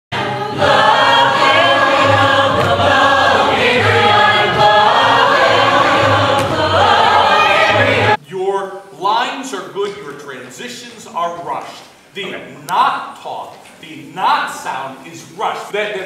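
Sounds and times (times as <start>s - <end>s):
mixed choir singing: 0.1s - 8.2s.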